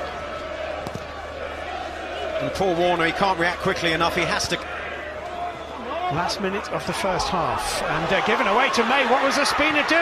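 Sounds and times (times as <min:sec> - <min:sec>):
stadium crowd hum: 0:00.0 - 0:10.0.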